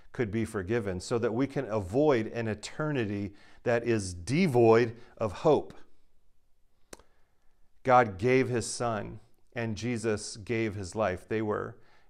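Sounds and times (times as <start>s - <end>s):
man speaking: 0.0s - 5.9s, 7.8s - 11.8s.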